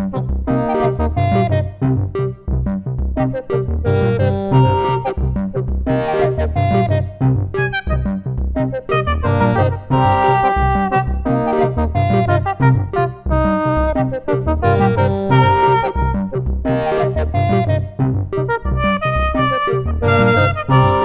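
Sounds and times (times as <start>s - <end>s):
pitched synth notes: 0.0s - 2.4s, 3.2s - 21.0s
pulsing low bass: 0.0s - 21.0s.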